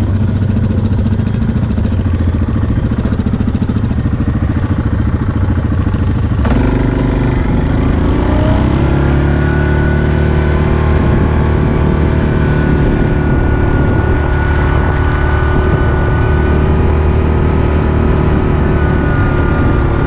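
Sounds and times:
atv engine running: 0.0 - 20.0.

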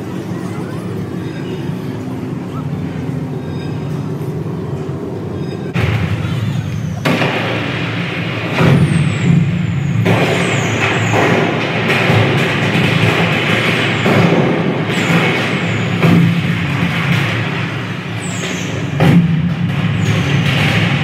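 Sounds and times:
fireworks bursting and crackling: 5.7 - 21.0.

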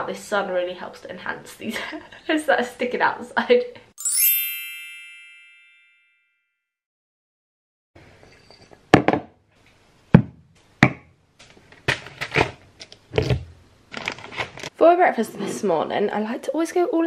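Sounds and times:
chime ringing: 4.0 - 6.5.

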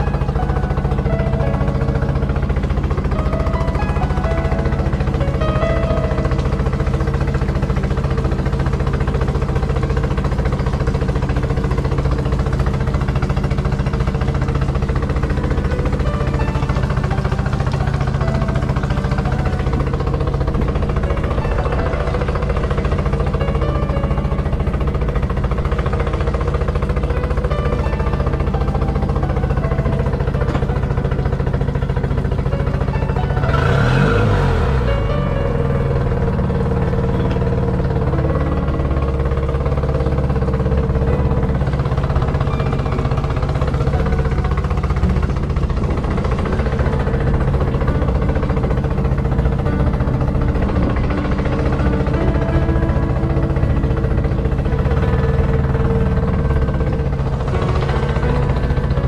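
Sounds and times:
music playing: 0.0 - 59.0
outboard motor revving: 0.0 - 59.0.

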